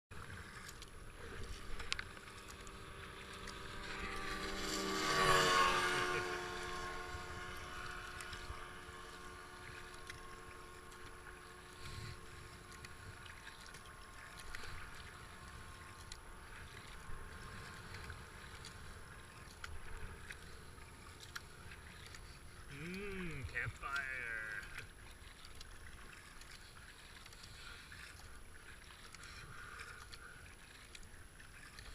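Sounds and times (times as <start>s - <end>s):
motorboat passing: 0.1s - 31.9s
paddle strokes: 0.1s - 31.9s
water lapping at hull: 0.1s - 31.9s.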